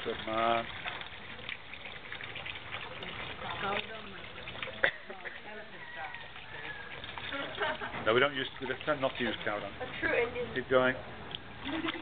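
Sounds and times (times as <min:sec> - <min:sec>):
pulp pouring into water: 0:00.0 - 0:09.8.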